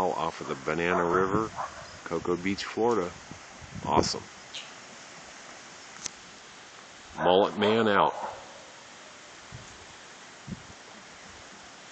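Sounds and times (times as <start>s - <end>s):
faint outdoor hiss: 0.0s - 11.9s.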